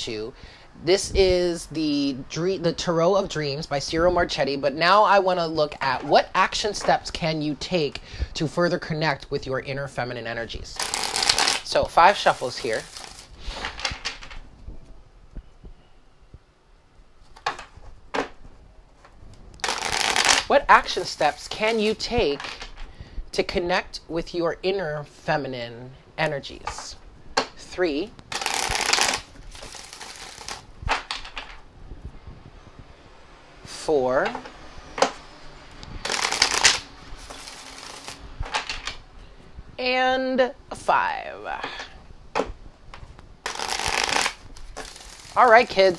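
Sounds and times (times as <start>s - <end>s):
cards being shuffled: 10.8s - 14.4s, 19.0s - 22.8s, 28.2s - 31.6s, 36.0s - 39.0s, 43.0s - 45.9s.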